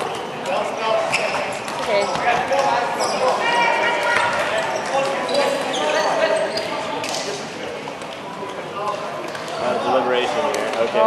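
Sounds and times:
players talking and calling: 0:00.0 - 0:11.0
balls bouncing on wooden court: 0:00.4 - 0:07.2.

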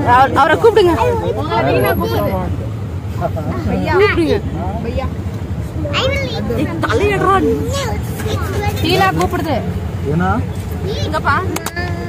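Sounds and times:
auto-rickshaw engine drone: 0:00.0 - 0:12.0
passengers talking: 0:00.0 - 0:12.0.

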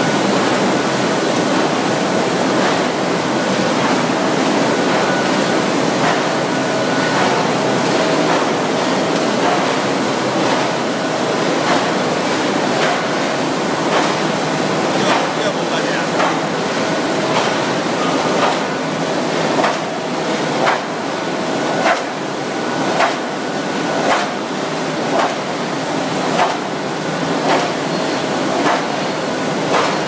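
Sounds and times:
printing press running: 0:00.0 - 0:30.0
sharp machine knock: 0:13.9 - 0:14.3, 0:15.0 - 0:16.5, 0:20.6 - 0:21.0, 0:23.0 - 0:23.3, 0:24.0 - 0:24.4, 0:25.1 - 0:25.5, 0:26.3 - 0:26.7, 0:28.6 - 0:29.1, 0:29.7 - 0:30.0.

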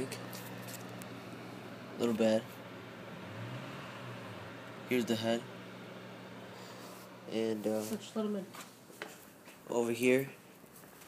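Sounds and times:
low steady hum: 0:00.0 - 0:10.8
man speaking: 0:04.8 - 0:05.6, 0:07.2 - 0:08.6.

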